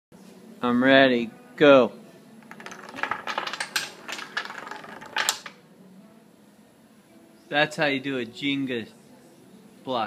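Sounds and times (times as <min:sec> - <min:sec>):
wooden blocks clacking on table: 0:02.4 - 0:05.6.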